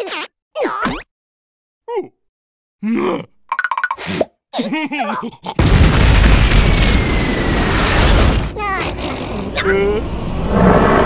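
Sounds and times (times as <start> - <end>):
loud rumbling: 5.6 - 8.6.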